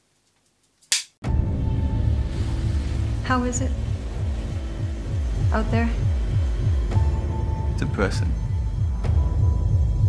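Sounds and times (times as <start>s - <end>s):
low music drone: 1.2s - 10.0s.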